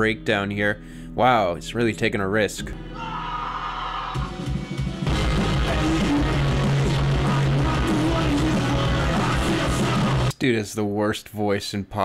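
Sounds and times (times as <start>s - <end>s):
pop-punk rock band: 4.1s - 10.3s
man singing: 5.2s - 10.3s.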